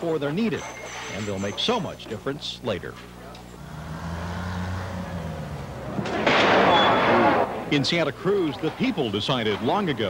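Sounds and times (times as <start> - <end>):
engine humming: 3.4 - 9.2.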